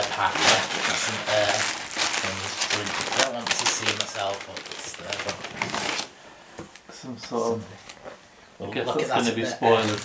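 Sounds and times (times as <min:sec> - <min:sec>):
plastic and paper crinkling: 0:00.0 - 0:06.9, 0:09.3 - 0:10.0.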